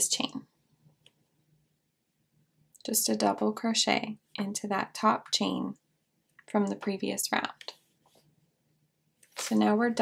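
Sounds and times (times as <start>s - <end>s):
woman speaking: 0.0s - 0.6s, 2.8s - 5.8s, 6.5s - 7.8s, 9.4s - 10.0s.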